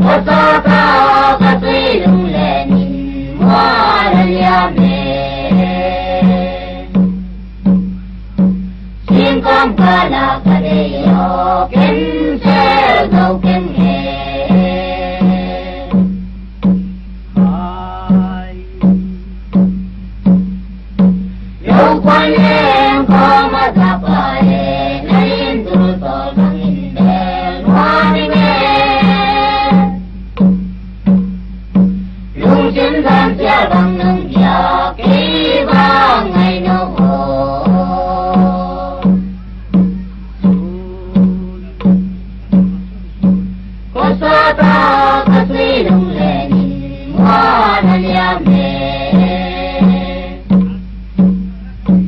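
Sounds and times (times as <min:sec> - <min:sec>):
instrumental accompaniment: 0:00.0 - 0:52.0
pulsing low note: 0:00.0 - 0:52.0
steady low beat: 0:00.0 - 0:52.0
person singing: 0:09.1 - 0:16.0, 0:17.4 - 0:18.9, 0:21.6 - 0:30.0, 0:32.4 - 0:39.4, 0:40.4 - 0:41.9, 0:44.0 - 0:50.8.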